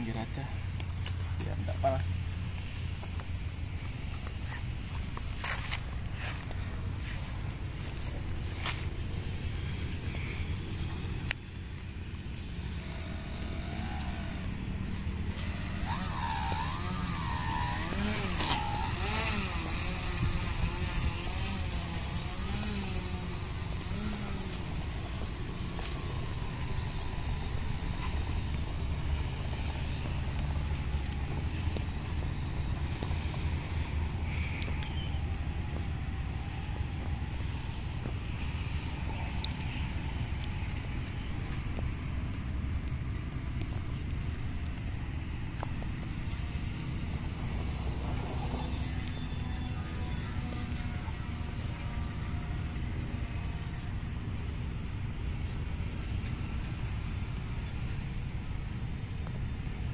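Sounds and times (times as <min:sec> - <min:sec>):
wind rumble on microphone: 0:00.0 - 0:51.5
electric motors whining: 0:00.0 - 0:59.9.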